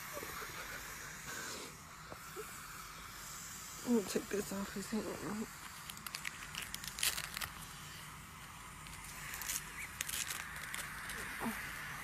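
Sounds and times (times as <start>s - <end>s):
rustling and crackling near microphone: 4.8s - 8.0s, 8.8s - 11.8s.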